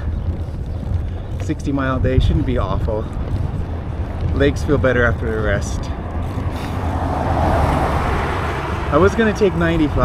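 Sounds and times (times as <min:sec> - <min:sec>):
steady low rumble: 0:00.0 - 0:10.0
pickup truck passing: 0:05.9 - 0:10.0.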